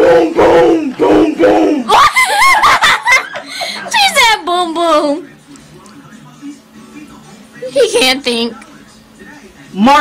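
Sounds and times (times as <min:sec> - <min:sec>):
young people shouting and laughing: 0:01.8 - 0:04.2.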